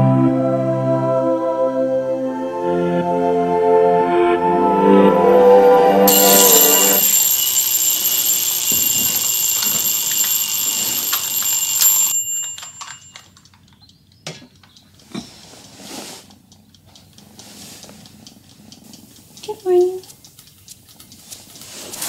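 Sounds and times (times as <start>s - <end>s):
alarm clock ringing: 6.0s - 13.4s
faint clicks: 6.1s - 22.0s.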